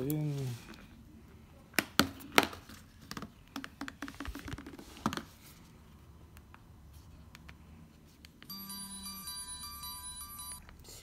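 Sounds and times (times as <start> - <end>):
phone power-on melody: 8.5 - 10.6.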